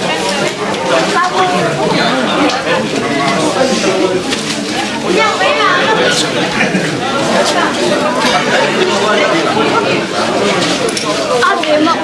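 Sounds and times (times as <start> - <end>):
chatter of many people: 0.0 - 12.0.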